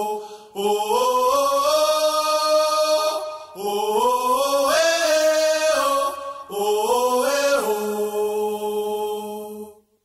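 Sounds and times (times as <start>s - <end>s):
wordless vocal chant: 0.0s - 10.0s.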